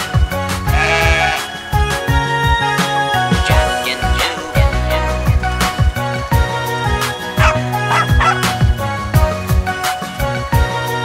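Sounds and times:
upbeat instrumental children's music: 0:00.0 - 0:11.0
cartoon sheep bleat: 0:00.8 - 0:01.5.

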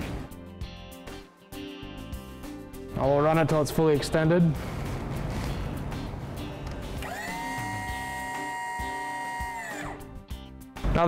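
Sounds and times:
background music: 0:00.0 - 0:11.0
electric pump motor whining: 0:07.0 - 0:10.1.

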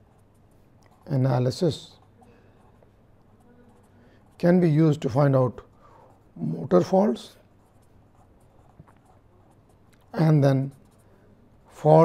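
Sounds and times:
pen scratching on paper: 0:00.0 - 0:12.0.

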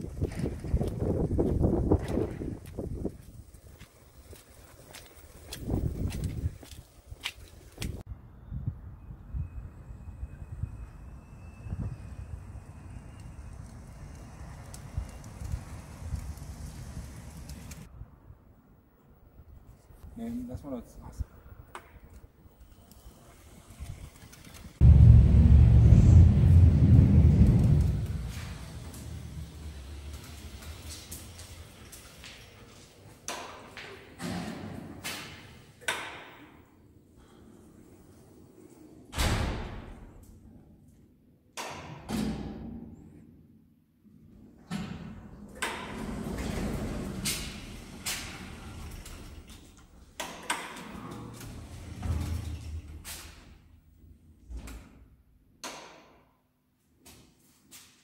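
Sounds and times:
wheels rumbling over threshold: 0:23.1 - 0:32.7
lift doors sliding open: 0:25.7 - 0:36.1, 0:44.6 - 0:53.6.

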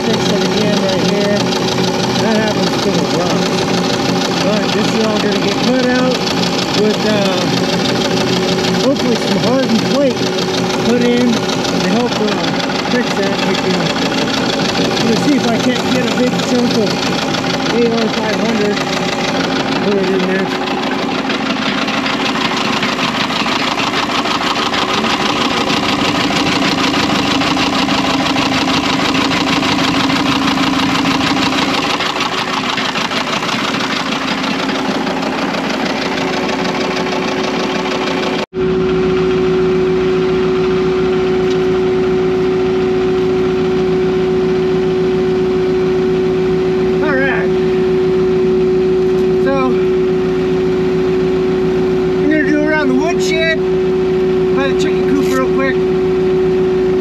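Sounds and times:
loader engine running: 0:00.0 - 0:57.0.

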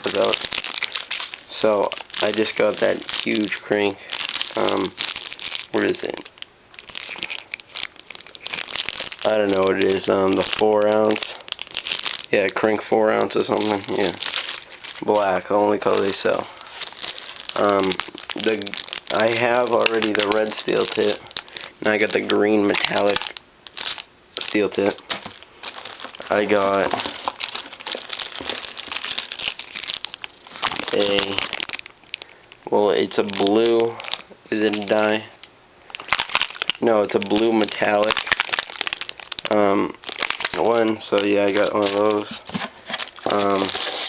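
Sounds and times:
plastic packaging crinkling: 0:00.0 - 0:44.0.

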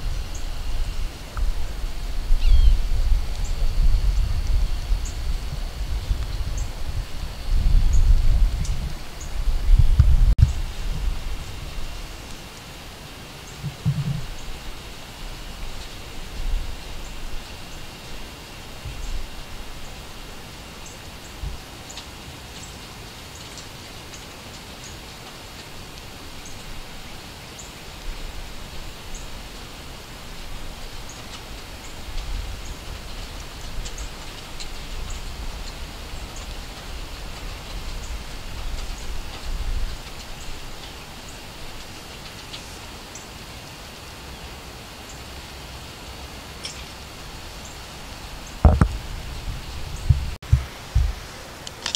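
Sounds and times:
wind gusts on microphone: 0:00.0 - 0:12.4, 0:13.5 - 0:17.9, 0:18.6 - 0:20.4, 0:30.2 - 0:42.5, 0:46.4 - 0:51.6.

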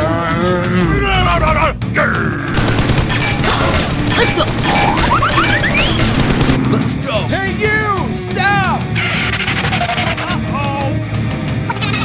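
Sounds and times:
rapid gunfire: 0:02.6 - 0:06.6.

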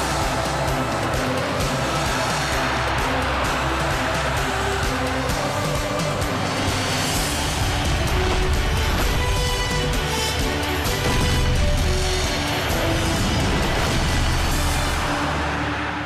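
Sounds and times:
television theme music: 0:00.0 - 0:16.0.

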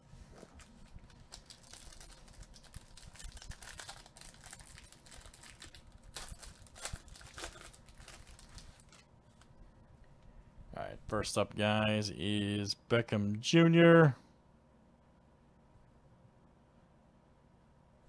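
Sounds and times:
plastic wrapper crinkling: 0:00.4 - 0:09.6.

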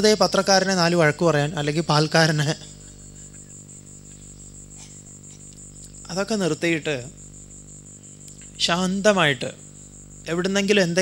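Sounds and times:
pulsing cricket chirp: 0:00.0 - 0:11.0
steady low hum: 0:00.0 - 0:11.0.

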